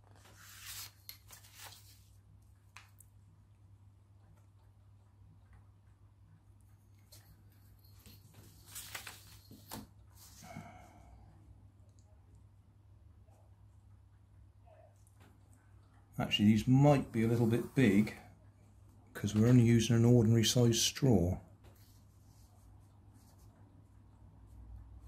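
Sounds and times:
paper rustling and scraping: 0.0s - 2.2s, 7.9s - 10.5s.

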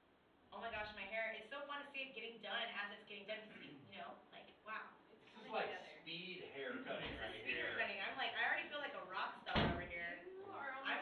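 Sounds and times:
people talking: 0.6s - 11.0s.

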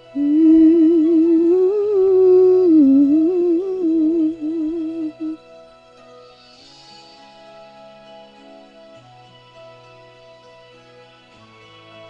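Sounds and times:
woman humming a melody: 0.0s - 5.5s
soft backing track: 0.0s - 12.0s.

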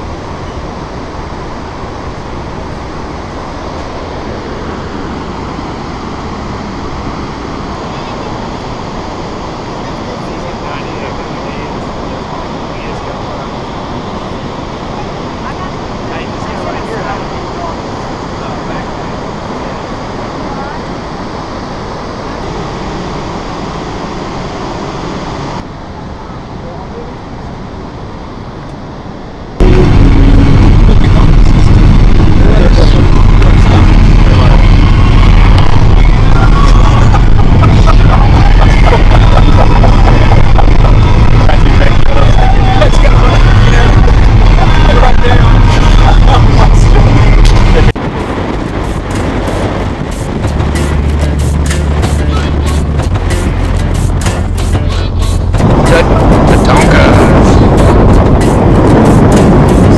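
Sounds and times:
waterfall rushing: 0.0s - 25.6s, 29.6s - 59.9s
low rumble of moving vehicle: 0.0s - 59.9s.

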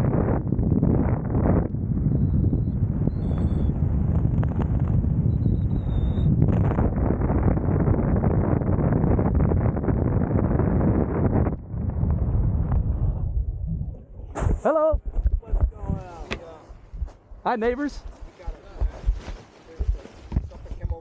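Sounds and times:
wind rushing over microphone: 0.0s - 21.0s.

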